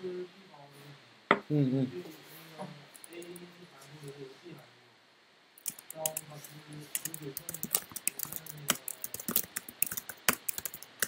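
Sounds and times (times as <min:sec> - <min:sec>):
computer keyboard typing: 0:05.6 - 0:11.0.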